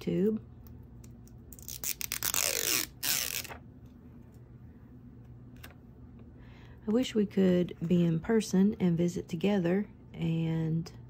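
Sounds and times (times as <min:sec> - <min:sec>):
sticker backing peeling: 0:01.5 - 0:03.6.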